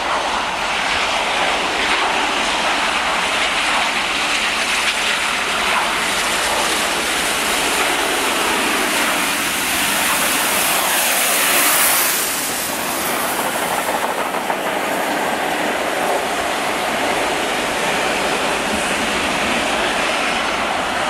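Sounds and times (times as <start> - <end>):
diesel locomotive passing: 0.0 - 21.0
steam locomotives passing at speed: 0.0 - 21.0
train wheels clacking: 0.0 - 21.0.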